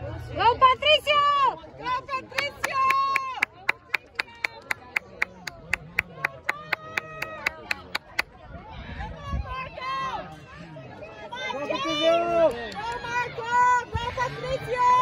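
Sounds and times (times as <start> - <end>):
rapid hand clapping: 2.4 - 8.2.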